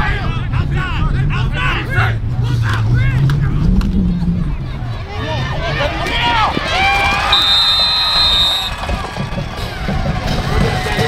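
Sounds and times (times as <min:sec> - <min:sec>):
people shouting: 0:04.5 - 0:09.2
referee's whistle blast: 0:07.3 - 0:08.8.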